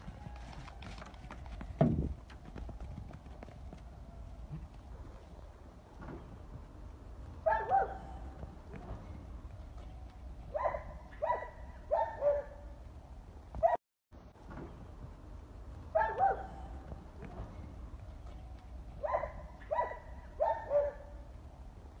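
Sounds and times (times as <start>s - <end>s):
bark-like animal calls: 7.4s - 8.3s, 10.5s - 12.7s, 15.9s - 16.7s, 19.0s - 21.2s.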